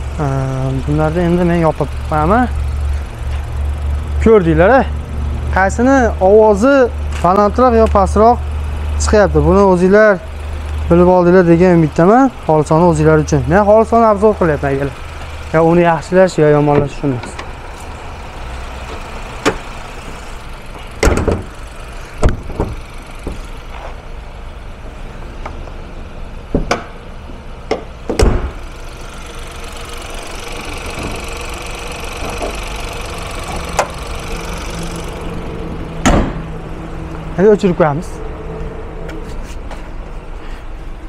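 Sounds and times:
low engine hum: 0:00.0 - 0:41.0
car hood slamming shut: 0:21.0 - 0:21.5, 0:22.2 - 0:23.4, 0:27.7 - 0:28.6, 0:36.0 - 0:36.5
hood knock: 0:21.0 - 0:21.5.

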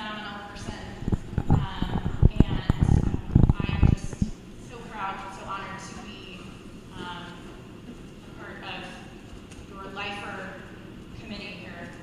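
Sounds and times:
woman talking into a microphone: 0:00.0 - 0:07.6, 0:08.3 - 0:09.1, 0:09.7 - 0:12.0.

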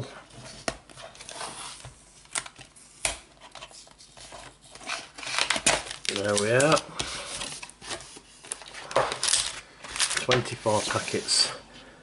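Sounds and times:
paper rustling: 0:03.4 - 0:11.4.

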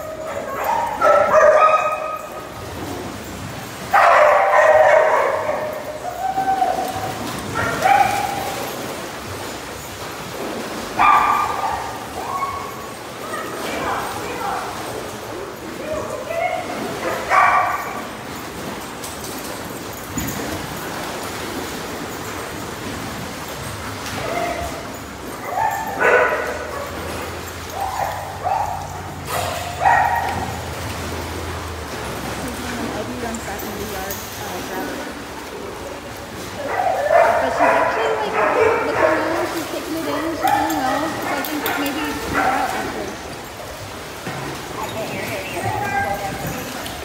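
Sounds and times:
dog barking: 0:00.1 - 0:02.5, 0:03.9 - 0:05.9, 0:07.5 - 0:08.6, 0:11.0 - 0:13.6, 0:16.9 - 0:18.1, 0:25.4 - 0:27.1, 0:27.7 - 0:30.6, 0:36.6 - 0:43.0.

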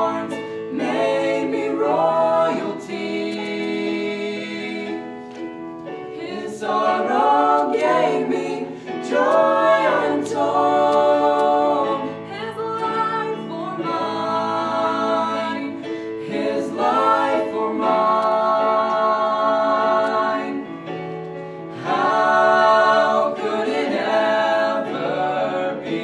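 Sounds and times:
vocal trio singing in harmony: 0:00.0 - 0:26.0.

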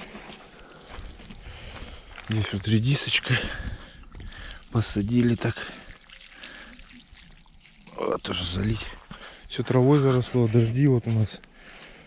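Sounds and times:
water trickling onto soil: 0:00.0 - 0:10.6.

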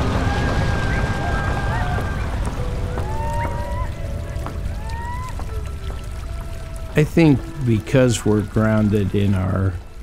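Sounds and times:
creek water rushing over gravel: 0:00.0 - 0:10.0.

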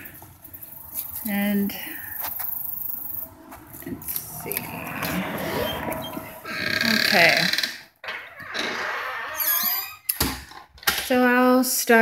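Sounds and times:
high squeak sliding down: 0:04.7 - 0:10.1.

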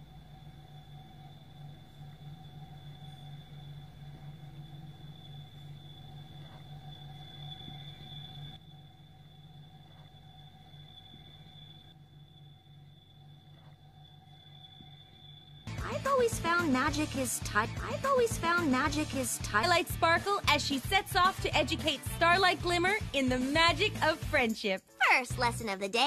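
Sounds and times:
low electronic hum: 0:00.0 - 0:23.9.

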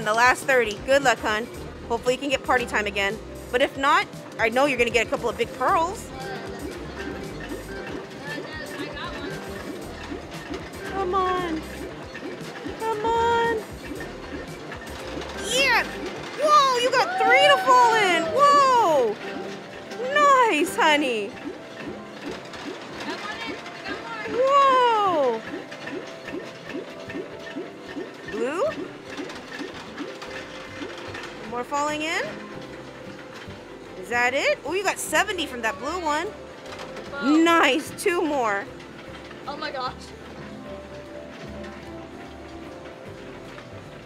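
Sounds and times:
arcade machine running: 0:00.0 - 0:44.0
plastic balls rattling on wheel: 0:00.0 - 0:44.0.

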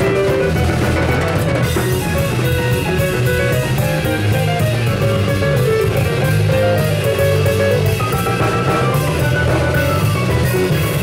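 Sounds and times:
live instrumental band: 0:00.0 - 0:11.0.

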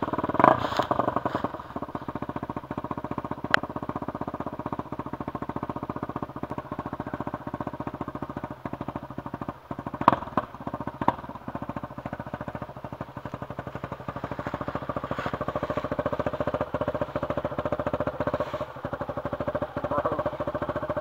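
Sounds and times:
dirt bike engine near idle: 0:00.0 - 0:21.0.

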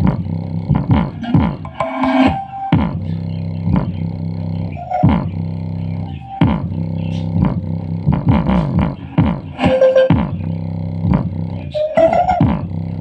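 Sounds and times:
bass-heavy music from speaker: 0:00.0 - 0:13.0.

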